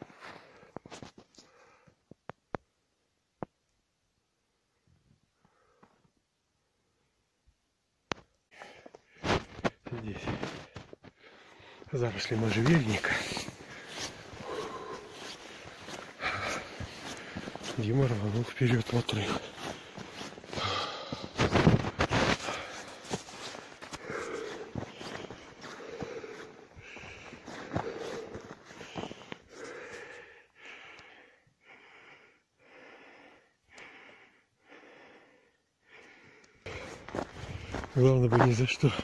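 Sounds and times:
man breathing heavily: 1.4s - 2.0s, 8.5s - 38.1s
footsteps on rocky snowy ground: 8.9s - 30.2s, 36.7s - 39.0s.

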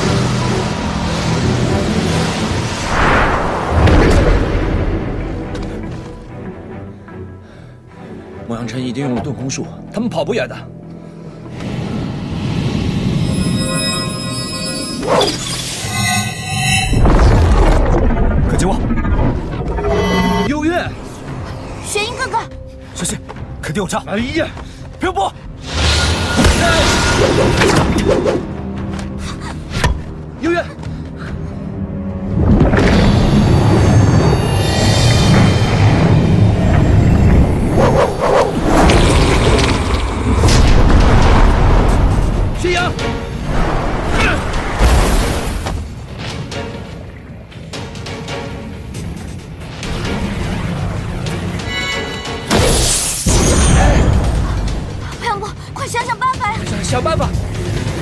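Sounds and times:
low rumbling whoosh: 0.0s - 5.5s
dramatic background music: 0.0s - 58.0s.

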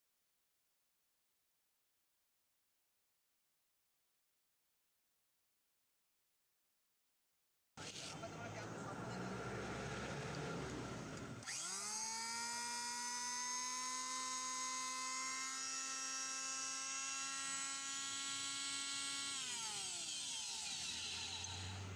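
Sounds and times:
electric planer motor whine: 9.1s - 21.9s.

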